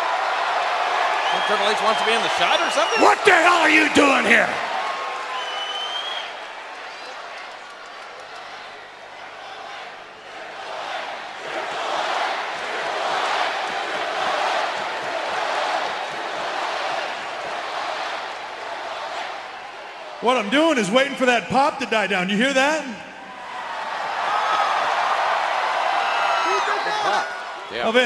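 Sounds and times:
arena crowd cheering: 0.0s - 28.0s.

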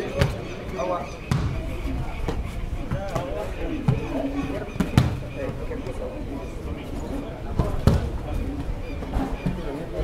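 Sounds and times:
players' voices: 0.0s - 10.0s
football being kicked: 1.3s - 1.6s, 4.8s - 5.2s.

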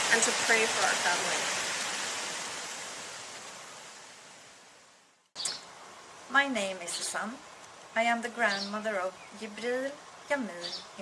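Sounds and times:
wind through foliage: 0.0s - 11.0s.

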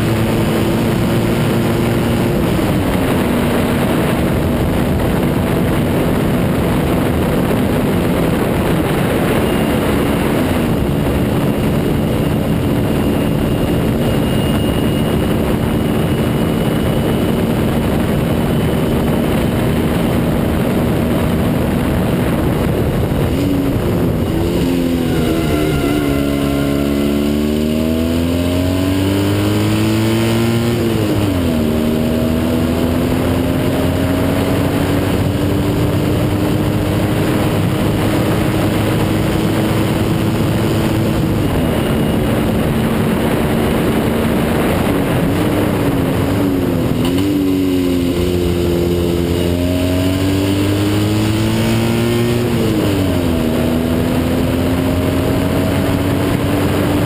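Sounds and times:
racing car engine revving: 21.8s - 41.8s.

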